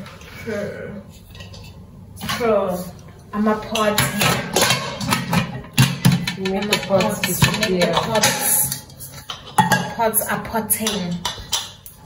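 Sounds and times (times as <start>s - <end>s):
metal pots and lids clinking: 3.6s - 11.9s.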